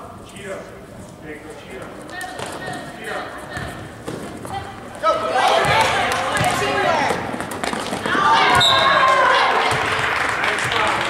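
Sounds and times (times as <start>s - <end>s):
basketball bouncing on gym floor: 5.6s - 9.0s
voices shouting: 8.1s - 9.9s.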